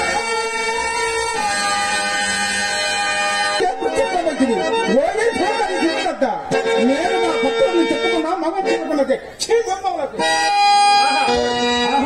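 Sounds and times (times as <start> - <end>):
sustained harmonium: 0.0 - 12.0.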